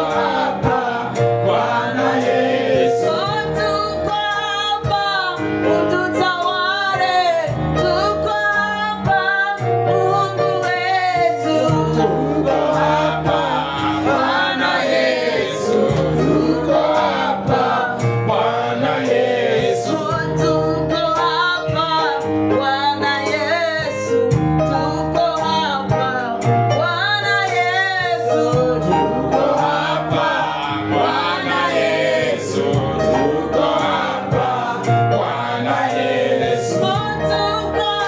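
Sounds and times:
backing voices singing: 0.0 - 5.0, 10.6 - 22.2, 28.0 - 38.0
drum rhythm: 0.0 - 38.0
keyboard bass notes: 0.0 - 38.0.

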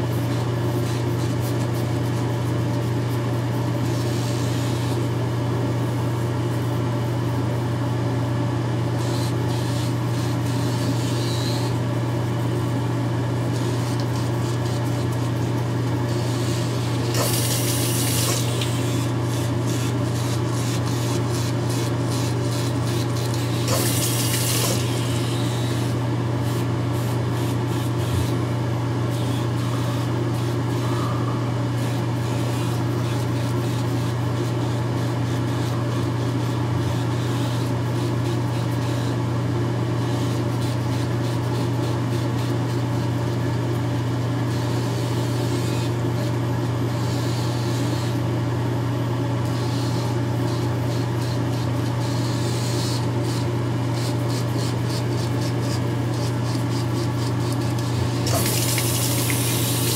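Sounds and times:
razor motor humming: 0.0 - 6.5, 8.0 - 59.9
razor blades scraping stubble: 16.1 - 28.4, 49.6 - 59.9
tap water running: 17.0 - 18.9, 23.3 - 25.3, 57.6 - 59.9.

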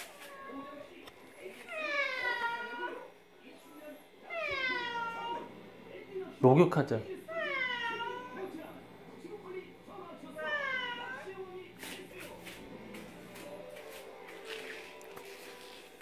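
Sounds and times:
cat meowing: 1.7 - 3.0, 4.3 - 5.5, 7.3 - 8.5, 10.4 - 11.3.

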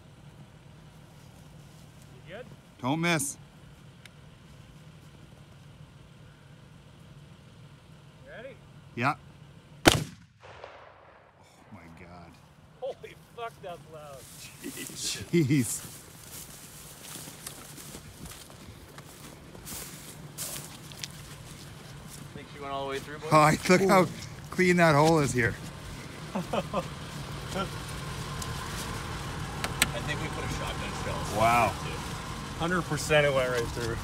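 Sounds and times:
faint steady low hum: 0.0 - 34.0
car engine running: 13.8 - 34.0
footsteps on wet mud and slush: 14.2 - 29.1.

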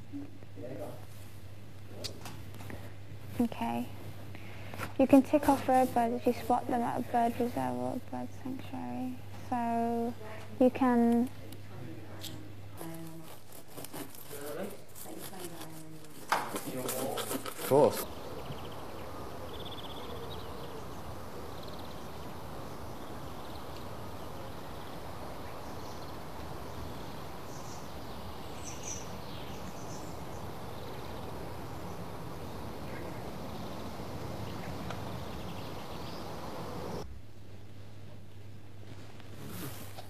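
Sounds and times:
steady background hiss: 0.0 - 40.0.

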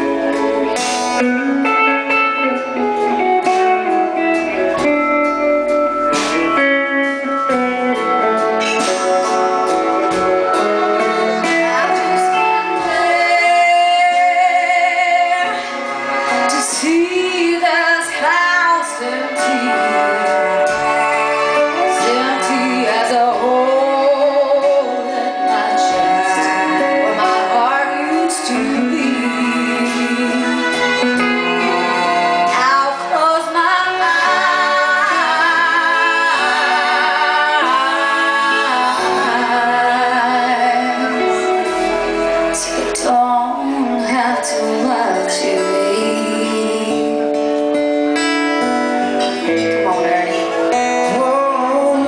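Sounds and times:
acoustic guitar: 0.0 - 52.0
instrumental accompaniment: 0.0 - 52.0
woman singing a slow ballad: 11.4 - 20.7, 21.8 - 47.6, 49.4 - 52.0.

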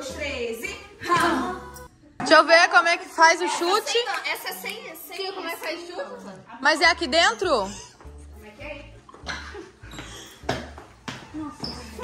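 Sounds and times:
feet stamping on tile floor: 9.1 - 12.0.

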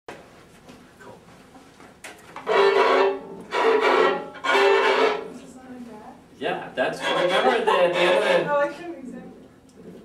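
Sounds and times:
strings playing bowed chords: 2.4 - 5.4, 6.8 - 8.6.

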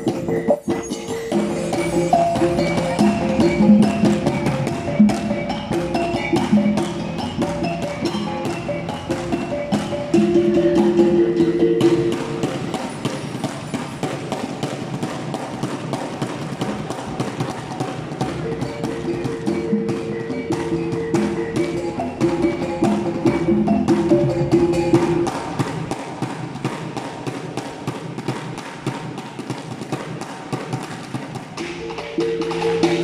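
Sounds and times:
clatter of percussion strokes: 0.0 - 33.0.

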